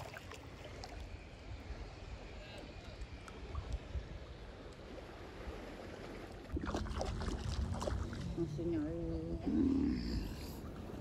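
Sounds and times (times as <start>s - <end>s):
water sloshing: 0.0s - 1.0s, 4.9s - 9.0s
rough growl-like voice: 9.4s - 10.6s.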